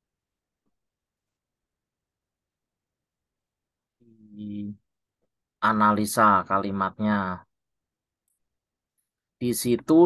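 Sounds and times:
man speaking: 4.0s - 4.8s, 5.6s - 7.5s, 9.4s - 10.0s.

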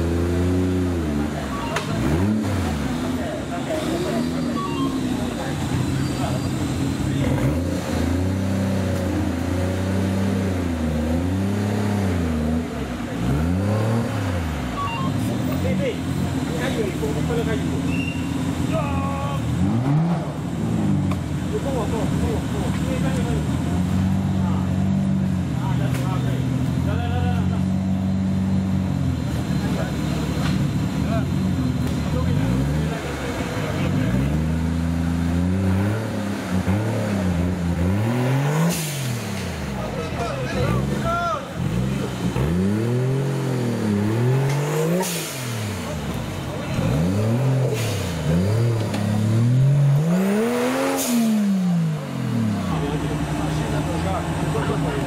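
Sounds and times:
truck engine revving: 0.0s - 55.0s.

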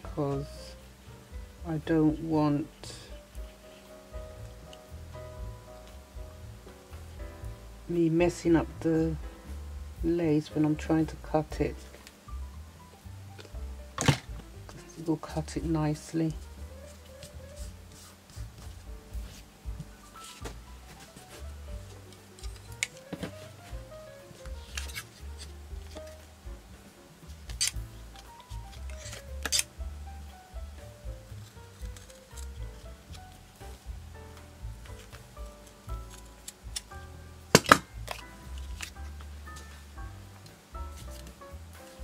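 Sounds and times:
soft background music: 0.0s - 42.0s
fabric scissors snipping: 28.7s - 29.7s, 31.8s - 32.5s.

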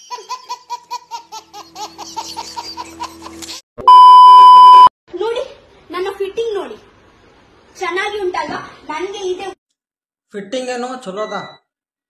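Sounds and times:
baby laughing: 0.0s - 3.6s.

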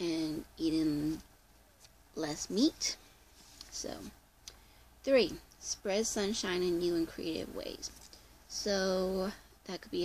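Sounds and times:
woman speaking: 0.0s - 1.3s, 2.1s - 4.2s, 5.0s - 10.0s.

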